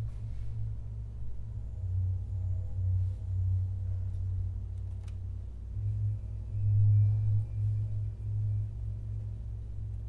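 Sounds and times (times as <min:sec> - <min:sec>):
low droning soundtrack tone: 0:00.0 - 0:10.0.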